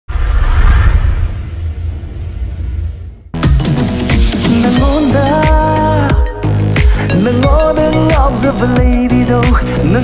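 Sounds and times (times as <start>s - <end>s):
rushing whoosh: 0.1s - 3.4s
deep rumbling boom: 0.1s - 3.5s.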